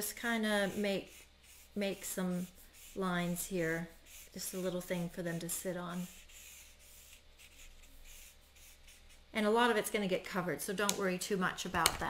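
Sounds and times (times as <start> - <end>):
marker scratching on cardstock: 0.2 - 9.2.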